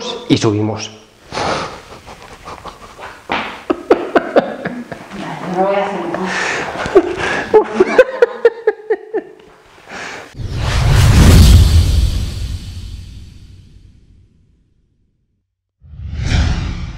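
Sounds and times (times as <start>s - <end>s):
man laughing: 1.3s - 5.1s, 6.7s - 9.5s
whoosh with deep rumble: 10.4s - 13.8s, 15.8s - 16.9s.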